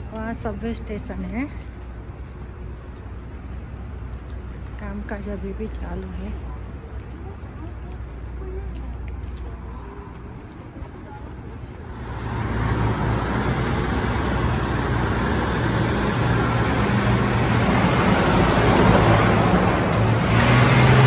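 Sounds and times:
street traffic: 0.0s - 21.0s
heavy truck engine running: 11.3s - 21.0s.

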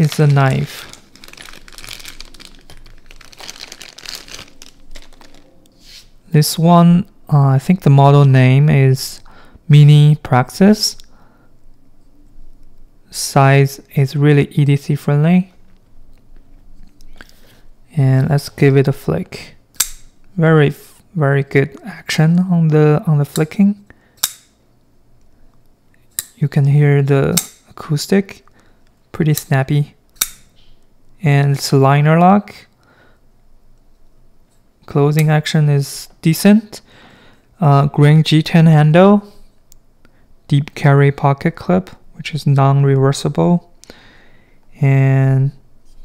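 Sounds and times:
plastic bag crinkling: 0.0s - 6.1s.

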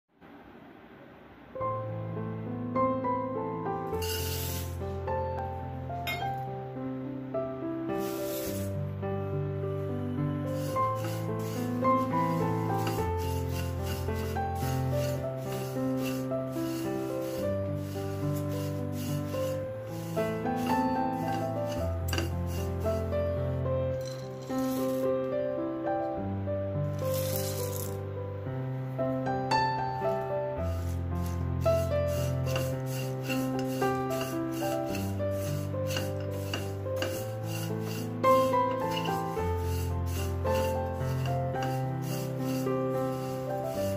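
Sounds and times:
slow background music: 1.6s - 43.9s
rice flakes scraping in metal pan: 3.9s - 5.0s, 8.0s - 8.8s, 10.4s - 23.3s, 24.0s - 25.1s, 27.0s - 28.0s, 30.6s - 43.9s.

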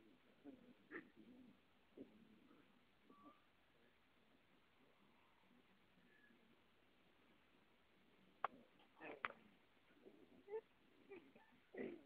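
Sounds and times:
faint animal sounds: 0.0s - 12.0s.

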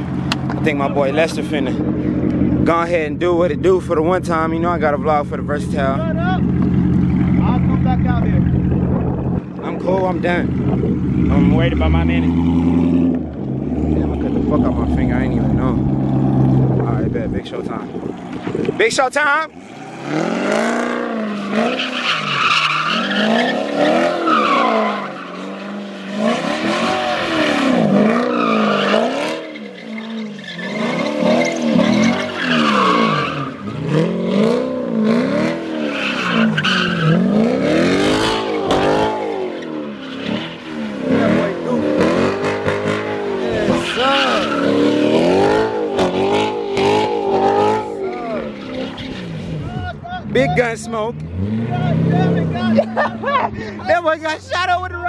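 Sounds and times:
car engine revving: 0.0s - 55.0s
tyres squealing on concrete: 19.7s - 34.2s, 35.4s - 50.6s.

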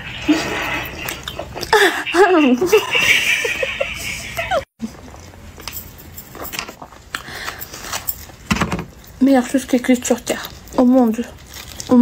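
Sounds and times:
quiet eating noises: 0.2s - 2.5s, 4.8s - 12.0s.

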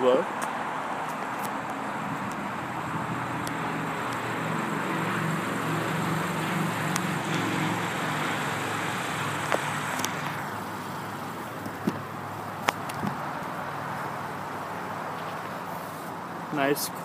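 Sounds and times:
outdoor noise: 0.0s - 17.0s
motor vehicle droning hum: 0.3s - 16.6s.

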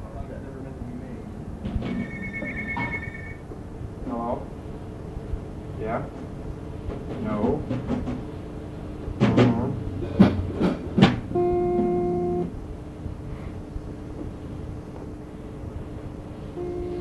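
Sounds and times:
steady held note: 11.3s - 12.6s, 16.5s - 17.0s.

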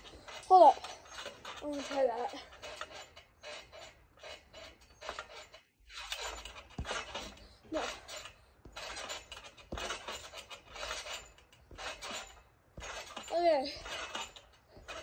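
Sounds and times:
trampoline springs creaking: 0.0s - 15.0s
low thuds of landings: 4.6s - 15.0s.

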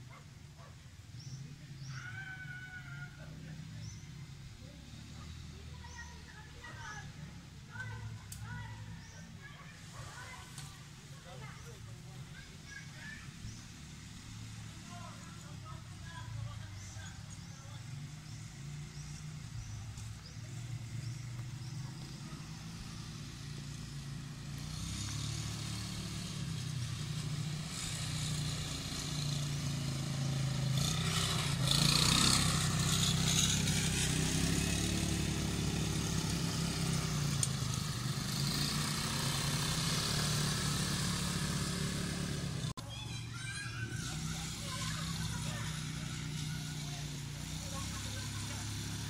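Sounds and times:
quad bike engines: 0.0s - 49.0s.

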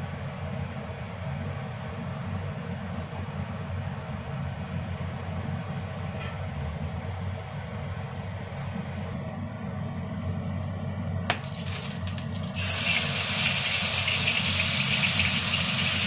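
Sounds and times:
gas burner rumble and hiss: 0.0s - 16.0s
oil crackling: 11.3s - 16.0s.

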